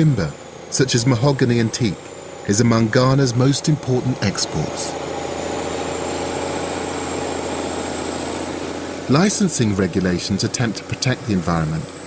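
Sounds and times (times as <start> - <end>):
faint high whine: 0.0 - 12.0
heavy machinery engine running: 0.0 - 12.0.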